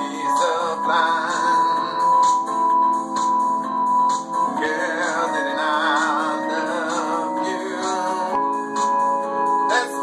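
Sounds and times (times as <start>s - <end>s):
electronic keyboard lead line: 0.0s - 10.0s
sustained keyboard chords: 0.0s - 10.0s.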